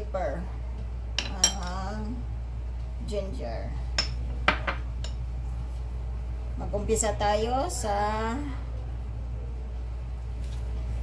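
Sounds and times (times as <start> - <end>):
steady low hum: 0.0 - 11.0
ceramic dishes clinking: 1.2 - 1.7.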